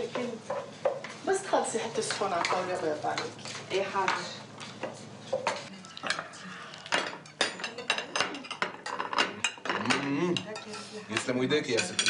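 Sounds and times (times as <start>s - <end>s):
dishes and utensils clinking: 2.0s - 12.0s.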